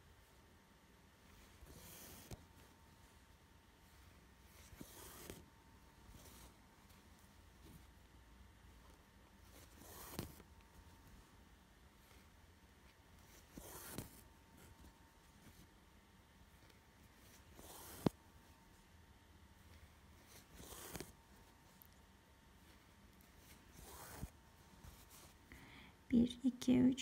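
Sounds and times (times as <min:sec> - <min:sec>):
thread swishing through cloth: 0:01.2 - 0:08.1, 0:08.8 - 0:11.3, 0:12.0 - 0:15.7, 0:16.6 - 0:18.5, 0:19.6 - 0:21.8, 0:22.6 - 0:25.5.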